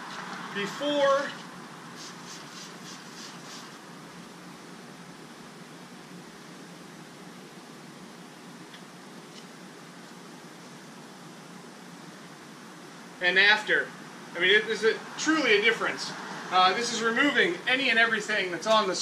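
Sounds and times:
outdoor ambience hiss: 0.0s - 19.0s.

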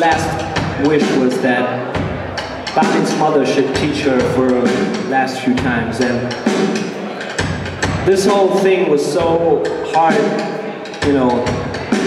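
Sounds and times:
man talking into microphone: 0.0s - 1.9s, 2.8s - 6.4s, 8.0s - 11.8s
band playing softly: 0.0s - 12.0s.

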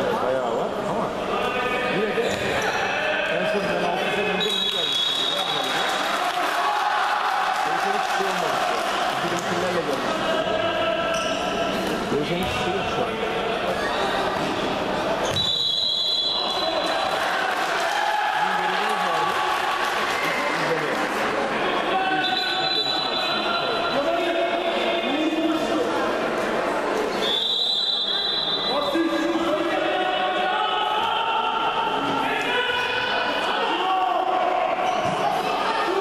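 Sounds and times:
ball bouncing on hall floor: 11.8s - 12.7s, 15.2s - 15.6s
players shouting: 16.1s - 20.6s.

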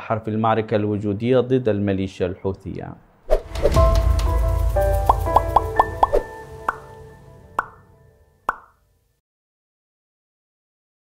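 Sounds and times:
outro music: 3.3s - 8.5s.

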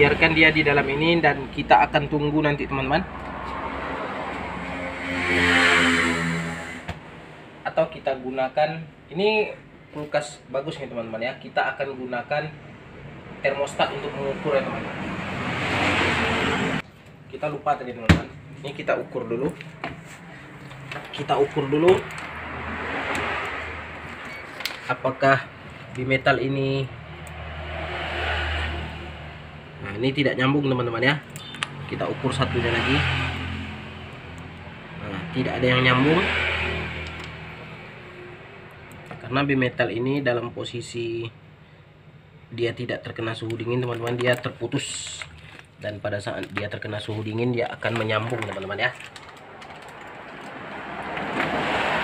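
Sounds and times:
vehicle passing: 0.0s - 7.7s, 12.7s - 16.8s, 17.8s - 39.4s, 47.0s - 52.0s.

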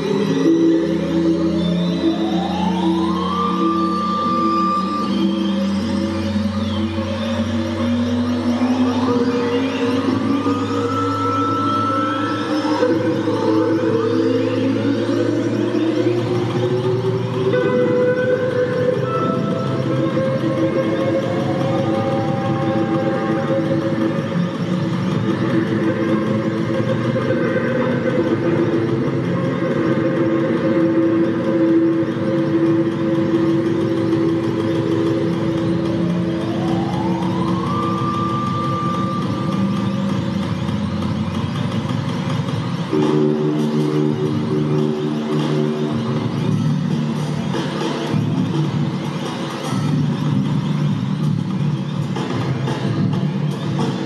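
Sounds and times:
electric guitar noisy drone: 0.0s - 54.0s.

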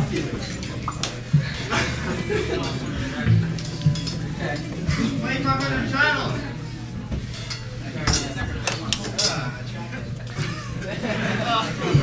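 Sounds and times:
low sustained electric bass notes: 1.7s - 7.1s
drum hits: 3.1s - 5.2s.

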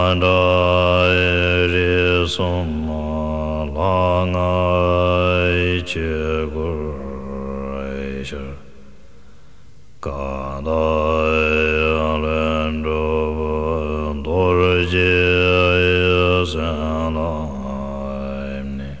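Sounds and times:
man chanting prayer: 0.0s - 8.7s, 10.0s - 19.0s.

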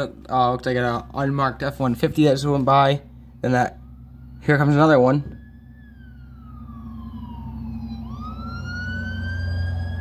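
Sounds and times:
fire engine wail siren: 0.0s - 10.0s
low engine rumble: 0.0s - 10.0s.

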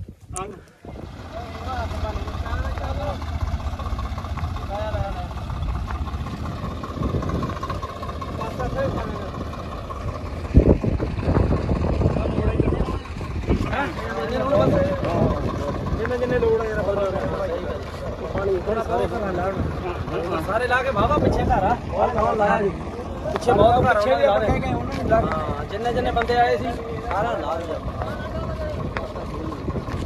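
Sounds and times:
vehicle engine running: 0.6s - 30.0s.

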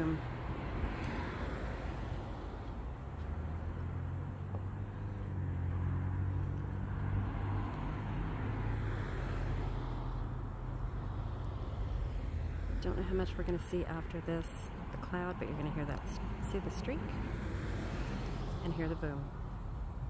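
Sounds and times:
road traffic rumble: 0.0s - 20.0s.

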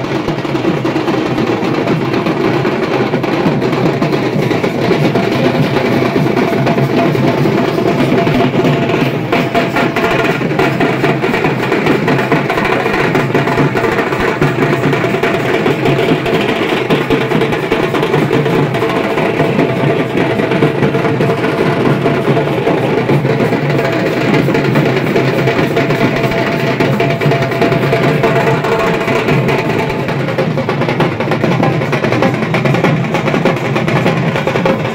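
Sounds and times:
barrel drums beaten fast: 0.0s - 34.9s.

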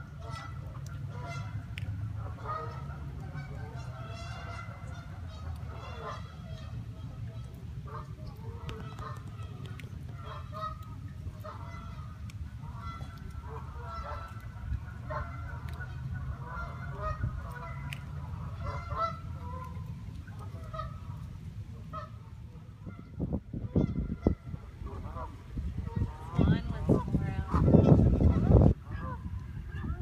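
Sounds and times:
geese honking: 0.0s - 30.0s
steady low rumble: 0.0s - 30.0s.

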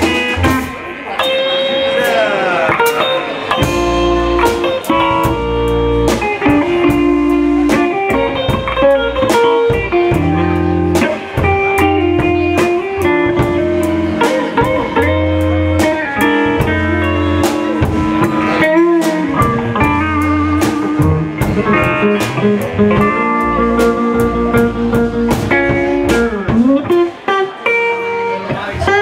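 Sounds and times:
drum kit beat: 0.0s - 29.0s
electric guitars: 0.0s - 29.0s.

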